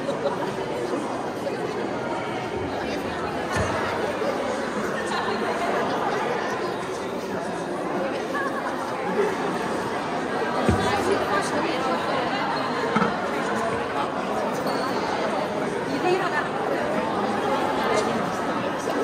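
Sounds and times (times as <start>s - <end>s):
crowd chattering: 0.0s - 19.0s.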